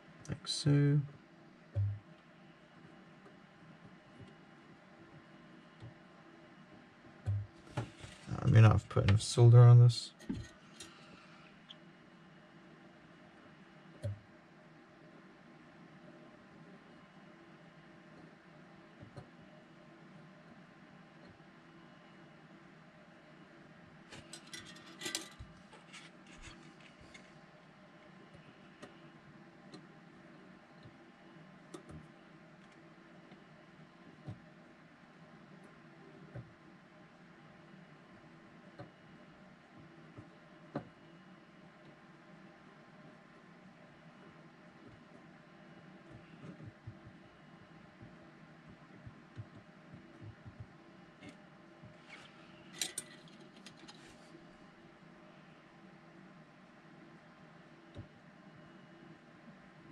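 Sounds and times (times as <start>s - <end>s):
quiet steady hum: 0.0s - 59.9s
small clicks and taps at a workbench: 31.7s - 33.4s.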